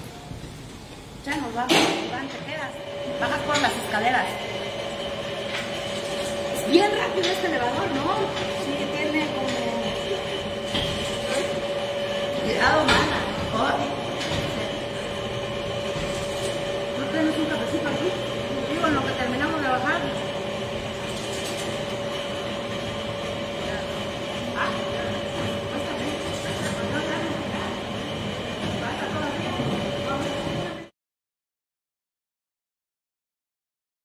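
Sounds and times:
elevator mechanical hum and whine: 0.0 - 30.9.

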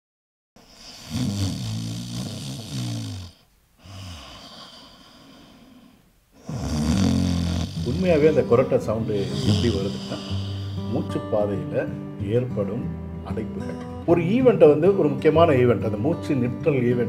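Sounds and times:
quiet breath: 0.6 - 6.7, 9.1 - 11.0
person snoring: 0.6 - 11.3.

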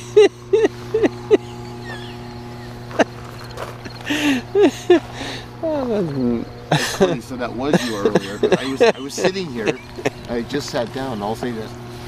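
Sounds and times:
man laughing: 0.0 - 10.5
low electrical hum: 0.0 - 12.0.

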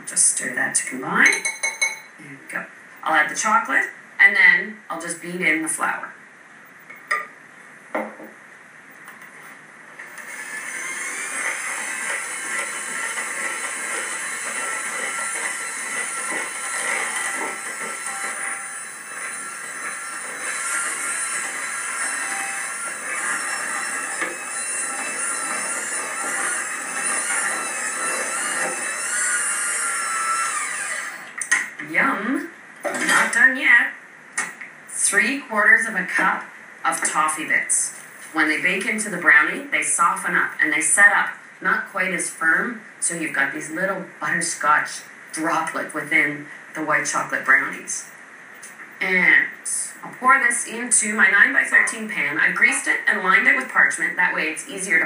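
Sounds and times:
electric mixer running: 10.0 - 31.5.

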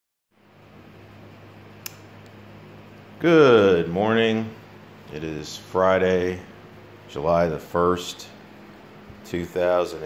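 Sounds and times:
low hum with faint hiss: 0.4 - 10.0.

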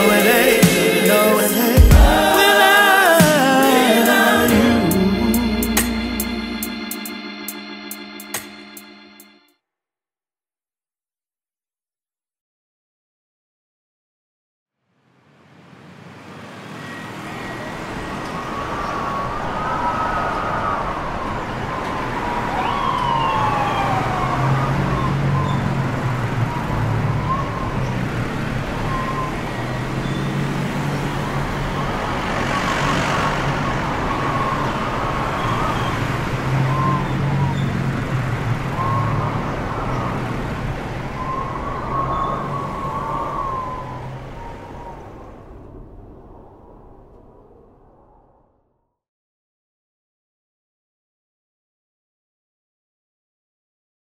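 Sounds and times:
traffic rumble: 0.0 - 7.1, 15.5 - 47.8
distant sirens wailing: 0.0 - 9.4, 15.4 - 48.0.

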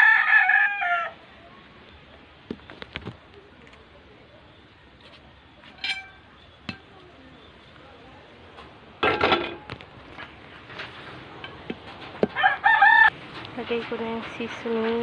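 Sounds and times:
kitchenware clatter: 5.7 - 6.9, 9.0 - 9.8
kitchenware clicks and clinks: 5.8 - 6.8, 9.0 - 9.8.

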